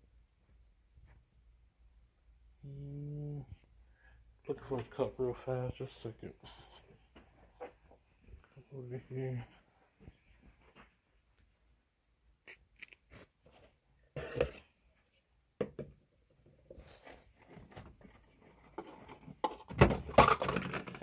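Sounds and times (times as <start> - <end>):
plastic cups knocking and crinkling: 12.8 - 21.0
plastic containers clattering: 16.9 - 21.0.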